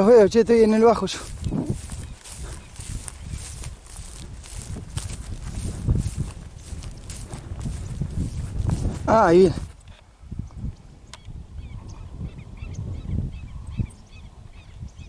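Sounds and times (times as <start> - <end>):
wind on microphone: 0.0 - 15.0.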